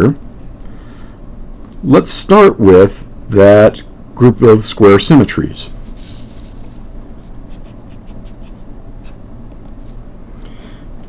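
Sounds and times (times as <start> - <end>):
low steady hum: 0.0 - 11.0
marker scratching on paper: 5.8 - 9.2.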